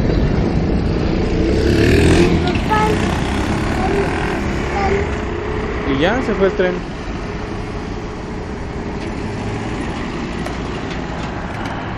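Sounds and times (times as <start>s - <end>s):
freight train rumbling: 0.0s - 11.9s
minivan driving past: 0.0s - 11.9s.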